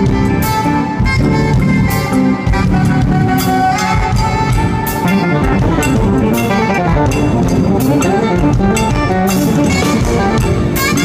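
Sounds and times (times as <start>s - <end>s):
congas: 0.0s - 11.0s
drums: 0.0s - 11.0s
saxophone soloing: 0.0s - 11.0s.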